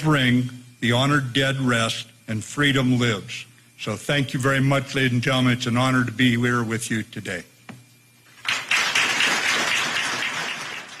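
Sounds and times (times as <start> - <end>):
audience applauding: 8.4 - 11.0.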